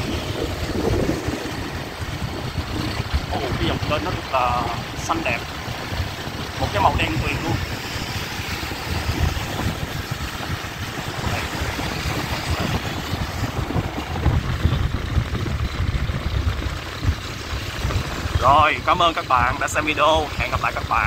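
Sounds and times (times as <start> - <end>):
motorbike traffic on wet road: 0.0 - 21.0
wind buffeting microphone: 0.0 - 21.0.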